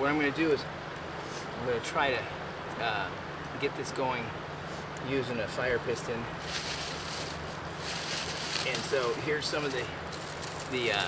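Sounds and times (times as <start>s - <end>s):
plastic bag rustling and crinkling: 6.4s - 11.0s.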